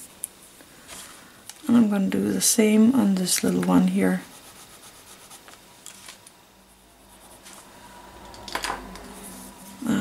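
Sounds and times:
charcoal pencil scratching on paper: 4.1 - 5.5.

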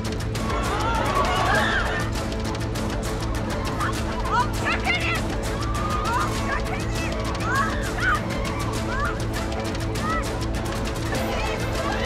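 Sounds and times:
crowd shouting and yelling: 0.3 - 2.2, 3.2 - 12.0.

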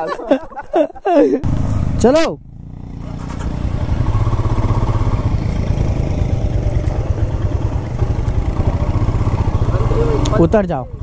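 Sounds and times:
motorcycle engine running: 1.4 - 11.0.

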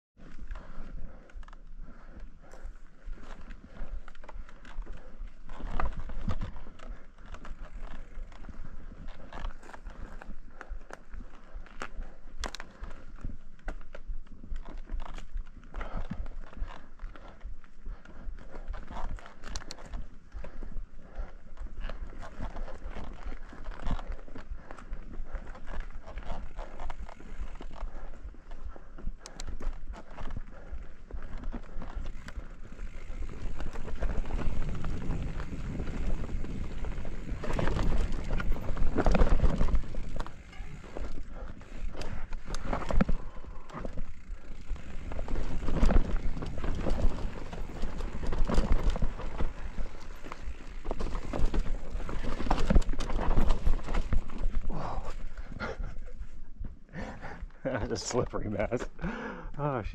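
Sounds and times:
bike tyres rolling over dirt: 0.2 - 59.7.

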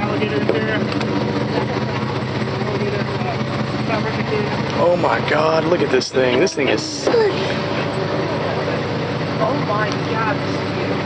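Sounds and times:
pickup truck engine idling: 0.0 - 11.0.

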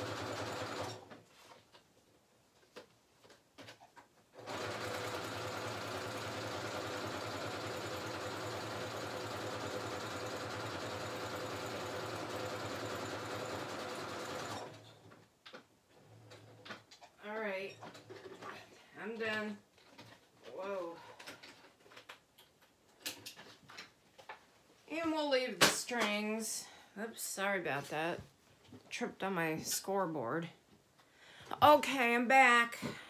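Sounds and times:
sewing machine stitching: 0.0 - 1.2, 4.4 - 15.1.

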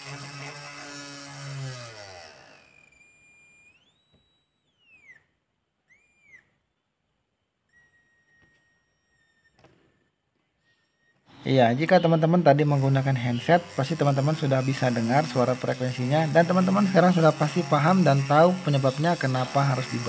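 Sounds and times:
electric motor humming: 0.0 - 4.1, 11.0 - 20.0
faint high whine: 2.5 - 6.6.

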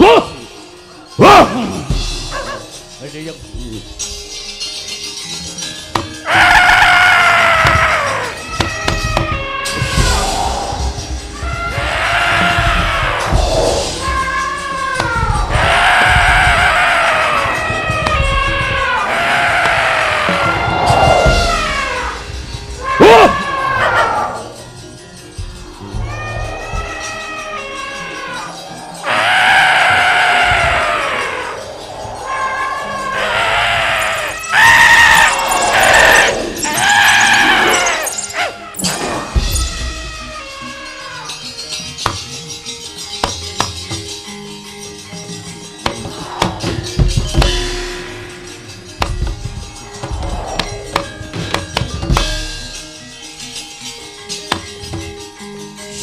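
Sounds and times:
high wailing cries: 6.2 - 41.6.

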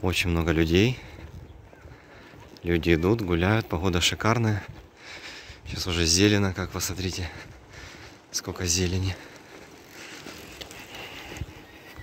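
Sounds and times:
people walking by: 0.0 - 12.0.

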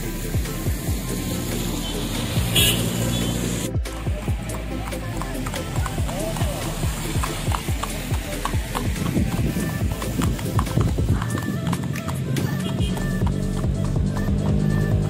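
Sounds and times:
music: 0.0 - 15.0
horse hooves on wet asphalt: 0.1 - 15.0.

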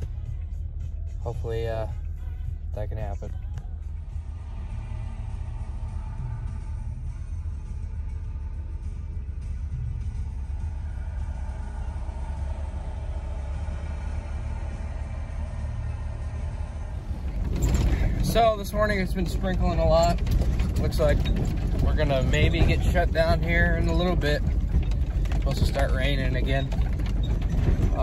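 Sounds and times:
truck engine rumbling: 0.0 - 28.0.

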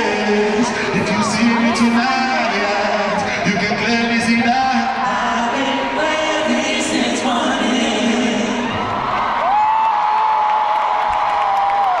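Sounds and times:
live concert music with singing: 0.0 - 10.0.

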